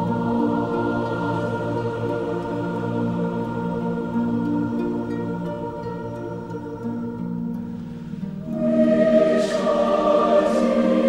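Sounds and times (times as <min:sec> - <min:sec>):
choir singing held chords: 0:00.0 - 0:11.0
soft hissy swells: 0:00.0 - 0:11.0.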